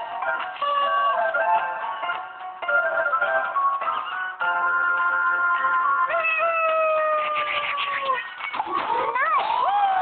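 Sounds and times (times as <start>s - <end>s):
children's game music: 0.0s - 10.0s.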